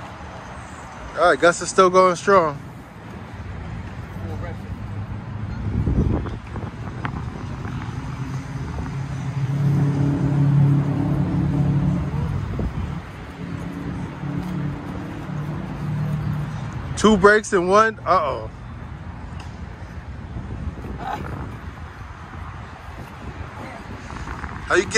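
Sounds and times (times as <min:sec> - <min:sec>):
road traffic hum: 0:00.0 - 0:24.9.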